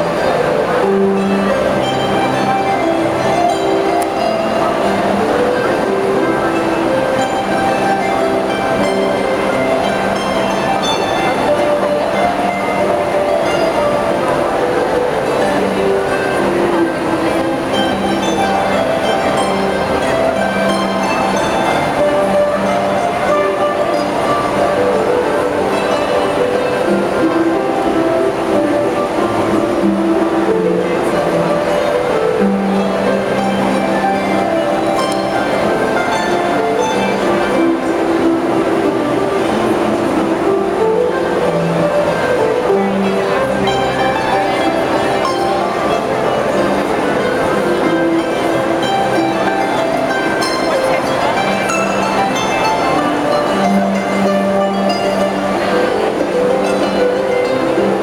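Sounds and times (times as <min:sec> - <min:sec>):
crowd hum: 0:00.0 - 0:58.0
harps playing a duet: 0:00.0 - 0:58.0
steady background din: 0:00.0 - 0:58.0.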